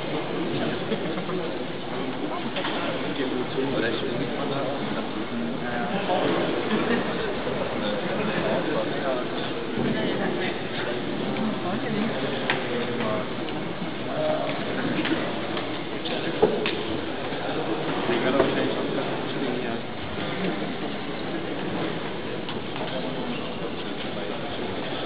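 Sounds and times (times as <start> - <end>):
people chattering: 0.0 - 25.0.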